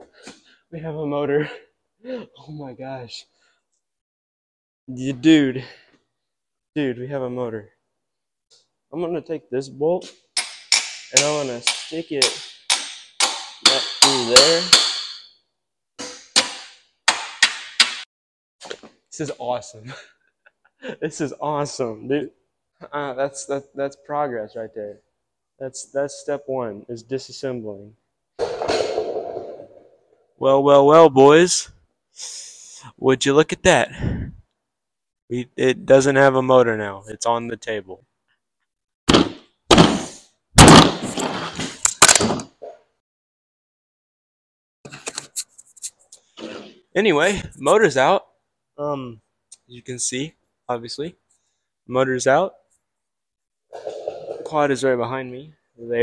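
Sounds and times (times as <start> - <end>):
hammer striking metal bolt: 10.4 - 15.3, 16.0 - 18.0.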